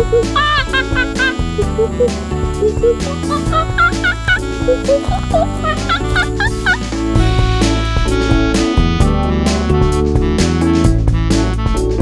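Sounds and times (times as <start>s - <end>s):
high monkey-like hoots: 0.0s - 6.8s
person laughing: 0.0s - 7.0s
upbeat children's music: 0.0s - 12.0s.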